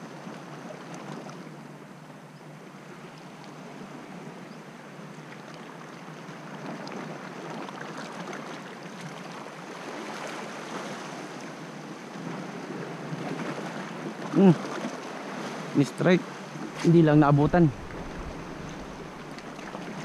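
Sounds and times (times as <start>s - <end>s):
waves lapping against rocks: 12.3s - 20.0s.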